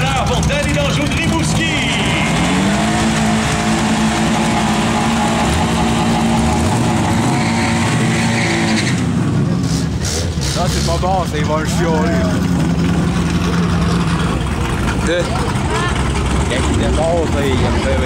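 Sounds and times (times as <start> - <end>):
car engine revving: 0.0 - 18.0
tyres spinning: 9.9 - 18.0
public address voice talking: 14.9 - 18.0.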